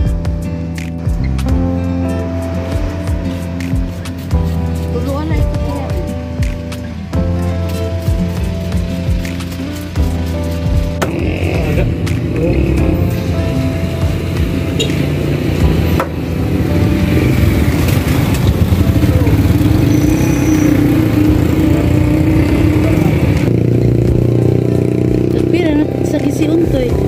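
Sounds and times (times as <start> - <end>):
music with singing voice: 0.0 - 27.0
motor engine running: 11.0 - 27.0.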